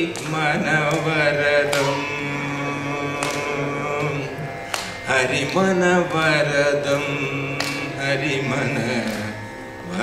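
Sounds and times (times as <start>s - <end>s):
continuous drone: 0.0s - 10.0s
man singing a long note: 0.0s - 10.0s.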